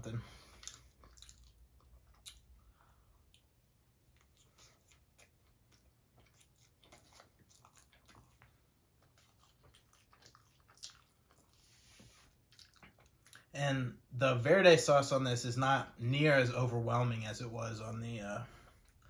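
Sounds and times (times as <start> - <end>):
chewing soft food: 0.2 - 13.5, 18.5 - 19.0.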